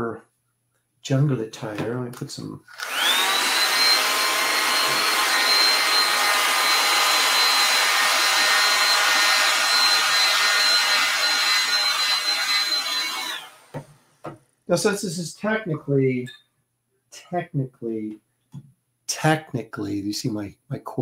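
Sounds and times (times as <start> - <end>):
hair dryer blowing: 2.7 - 13.8.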